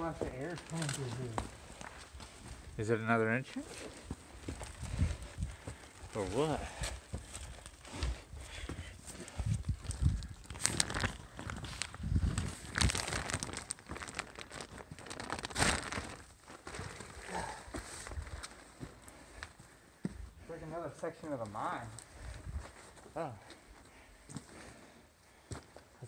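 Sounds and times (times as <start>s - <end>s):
footsteps on loose rock and sand: 0.0s - 2.8s, 3.5s - 20.4s, 21.2s - 25.9s.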